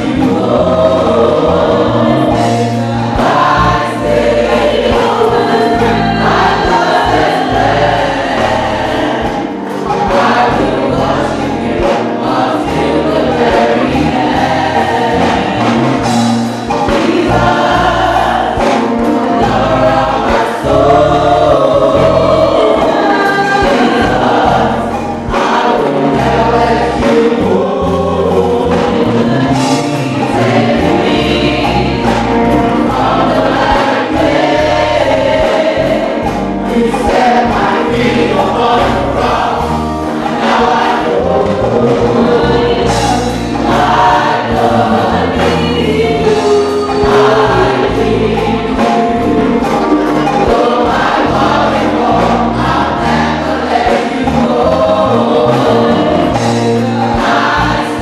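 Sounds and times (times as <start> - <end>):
bass accompaniment: 0.0 - 58.0
church choir singing a hymn: 0.0 - 58.0.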